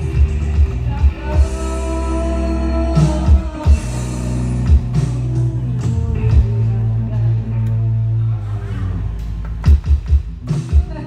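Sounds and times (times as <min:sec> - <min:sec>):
low bass note: 0:00.0 - 0:09.8
live band music: 0:00.0 - 0:11.0.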